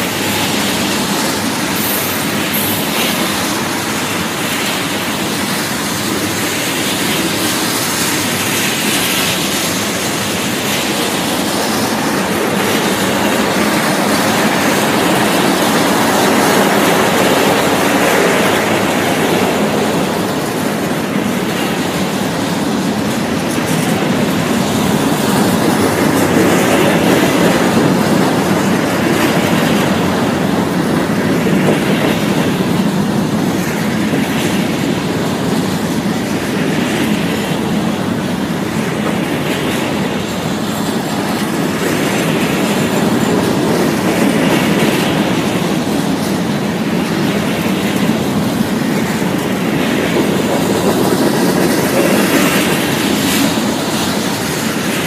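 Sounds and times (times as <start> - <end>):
freight train wheels rumbling: 0.0 - 55.0
wheels clickety-clack: 0.0 - 55.0.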